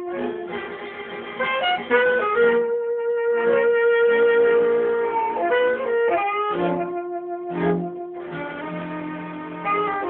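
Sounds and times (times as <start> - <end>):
chamber orchestra playing blues: 0.0 - 10.0.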